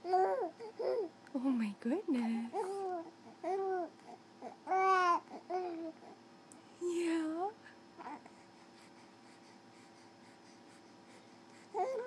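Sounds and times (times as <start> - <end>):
baby cooing: 0.0 - 1.1, 2.5 - 6.2, 11.8 - 12.0.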